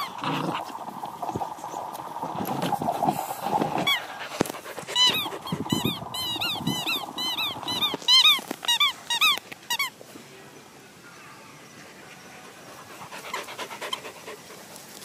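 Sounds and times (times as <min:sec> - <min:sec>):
squeaky dog toy squeaking: 0:05.0 - 0:09.9.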